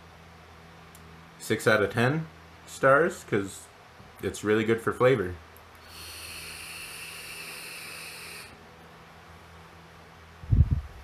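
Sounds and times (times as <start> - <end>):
airy hiss with faint whistle: 5.9 - 8.6.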